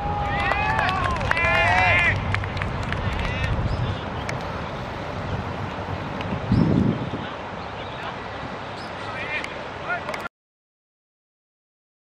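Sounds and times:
wind noise on microphone: 0.0 - 7.6.

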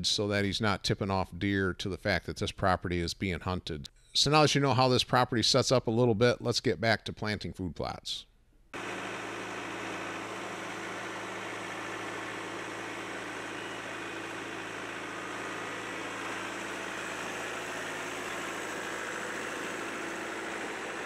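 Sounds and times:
tractor engine running: 8.8 - 21.0.

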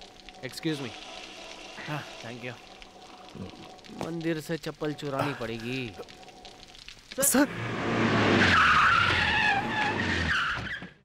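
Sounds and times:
car tyres squealing: 7.6 - 11.0.

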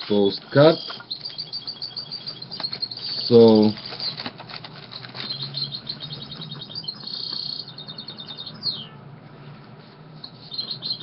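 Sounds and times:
birds chirping and trilling: 0.1 - 9.0, 10.2 - 11.0
falling bird whistle: 0.6 - 4.3, 4.9 - 9.0, 10.2 - 11.0.

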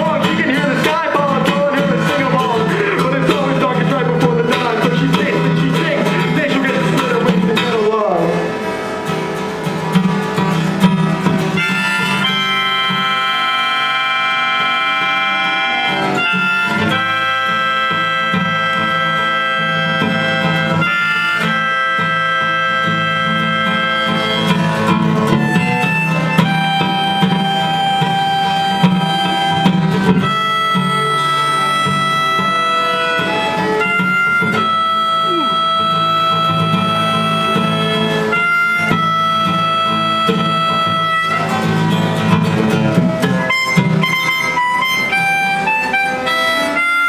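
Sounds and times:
acoustic guitar: 0.0 - 47.0
harmonica: 0.0 - 47.0
fiddle: 8.9 - 47.0.

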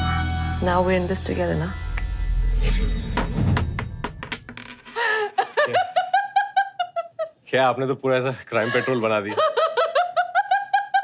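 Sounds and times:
person giggling: 8.6 - 11.0.

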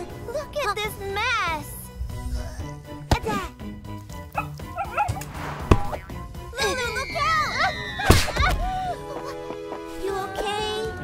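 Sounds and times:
background music: 0.0 - 11.0
cartoon puppy barking: 4.4 - 5.3
ball being kicked: 5.2 - 6.2.

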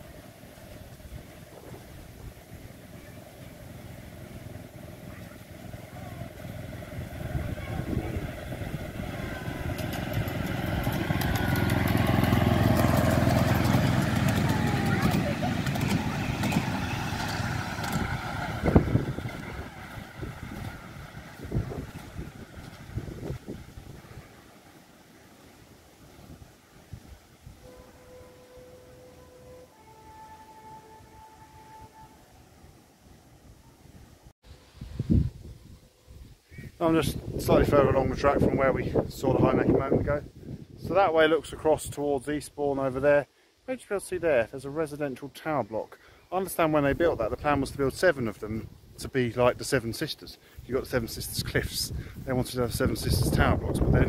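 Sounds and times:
miniature train passing: 0.0 - 34.8, 42.9 - 54.0
sharp train clack: 9.2 - 20.9.

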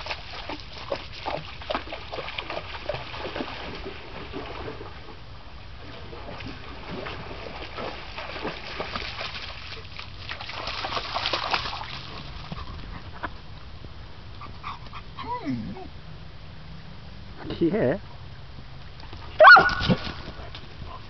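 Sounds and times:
dog splashing through water: 0.0 - 5.2, 5.8 - 12.9, 19.0 - 21.0
dog whining: 15.2 - 15.9.

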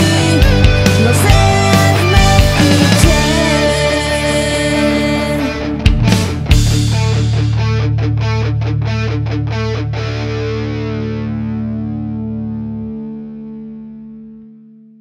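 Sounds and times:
distorted guitars and bass chord: 0.0 - 15.0.

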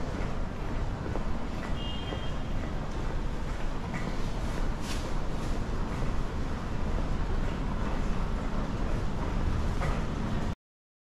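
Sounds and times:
low walkway rumble: 0.0 - 10.6.

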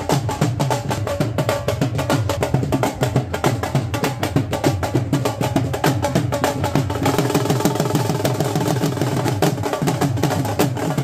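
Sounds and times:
barrel drums beaten with sticks: 0.0 - 11.0.

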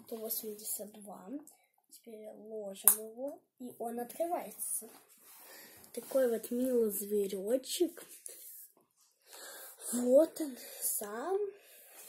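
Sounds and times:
child speaking: 0.0 - 5.0, 5.9 - 8.7, 9.8 - 11.6
child breathing: 5.2 - 6.0, 8.3 - 12.0.

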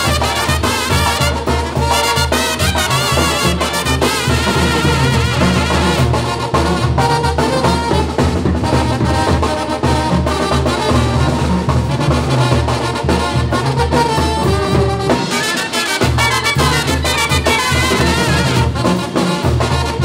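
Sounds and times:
drums: 0.0 - 20.0
trumpets and trombones: 0.0 - 20.0.

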